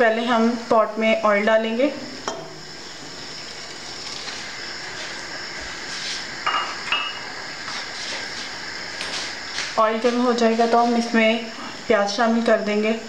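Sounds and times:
steady hiss: 0.0 - 13.0
oil pouring into pot: 2.6 - 6.4
cup clinking against pot: 6.5 - 7.3.

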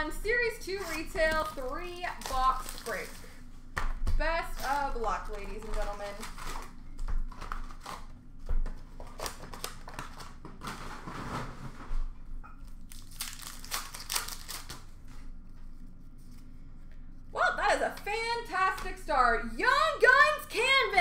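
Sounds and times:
foil packs crinkling and tearing: 0.7 - 3.5, 4.3 - 8.1, 8.9 - 11.3, 12.8 - 15.0.

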